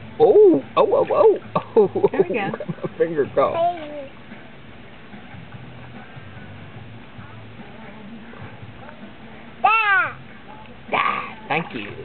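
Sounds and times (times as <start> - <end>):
toddler crying out: 9.6 - 10.2.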